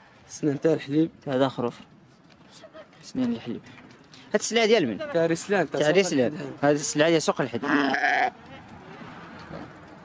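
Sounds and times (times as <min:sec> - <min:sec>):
sheep bleating: 0:07.6 - 0:08.4.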